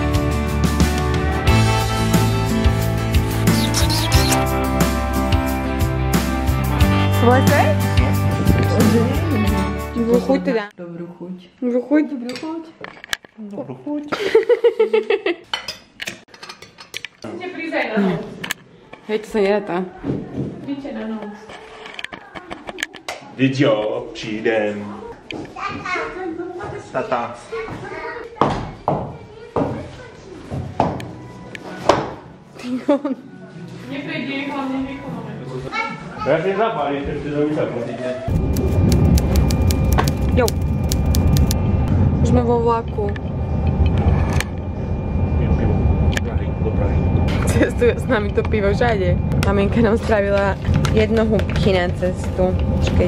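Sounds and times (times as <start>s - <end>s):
cutlery and dishes clinking: 15.5s - 17.3s
train rumble inside carriage: 38.3s - 53.0s.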